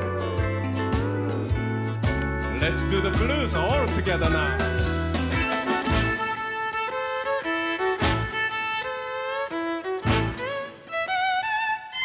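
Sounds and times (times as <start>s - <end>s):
band punching short accents: 0.0s - 6.8s, 8.0s - 8.6s, 10.0s - 10.8s
fiddle playing blues line: 0.0s - 12.0s.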